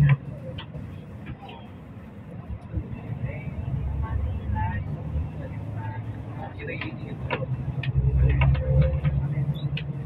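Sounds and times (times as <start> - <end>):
vehicle engine and road noise: 0.0 - 10.0.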